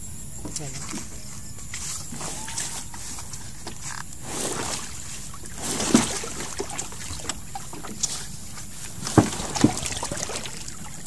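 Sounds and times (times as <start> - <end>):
wooden boat knocking: 9.0 - 10.8.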